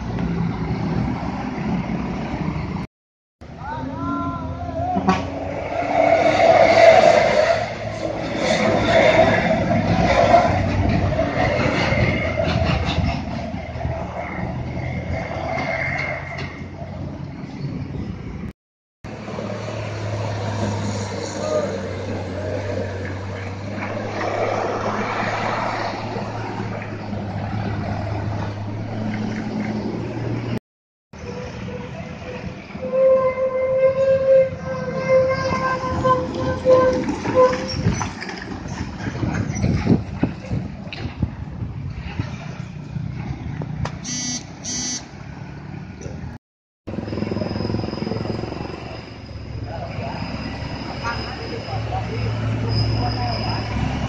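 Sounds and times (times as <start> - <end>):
heavy diesel trucks labouring: 0.0 - 18.5, 19.1 - 30.6, 31.2 - 54.0
motorbike engines passing: 19.1 - 30.6, 36.2 - 46.3, 46.9 - 54.0
steady pitched tone: 44.0 - 45.1.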